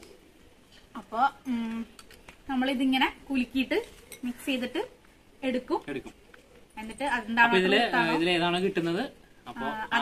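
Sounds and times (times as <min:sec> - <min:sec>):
woman talking: 0:01.0 - 0:01.9.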